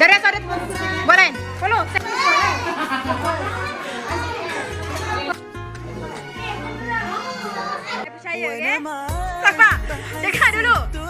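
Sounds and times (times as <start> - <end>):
voices chattering and calling out: 0.0 - 11.0
background music with low bass: 8.2 - 11.0.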